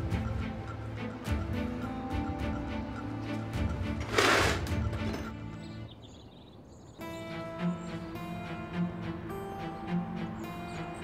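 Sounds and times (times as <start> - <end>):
drama score music: 0.0 - 11.0.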